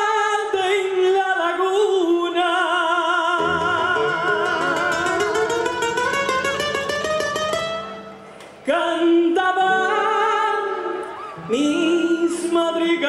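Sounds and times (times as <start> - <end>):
strummed acoustic guitar: 3.4 - 8.4.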